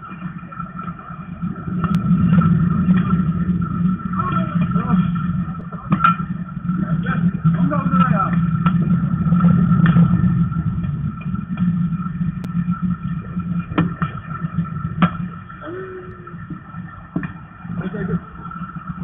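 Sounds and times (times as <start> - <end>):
steady low rumble: 0.0 - 19.0.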